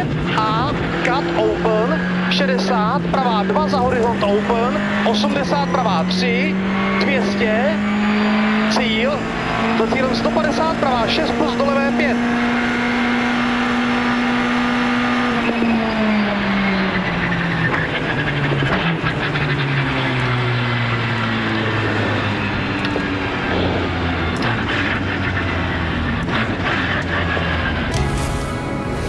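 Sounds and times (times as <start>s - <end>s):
rally car engine: 0.0s - 29.0s.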